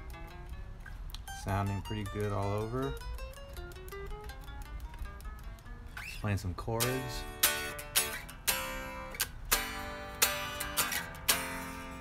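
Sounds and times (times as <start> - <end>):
unamplified electric guitar notes: 0.0 - 12.0.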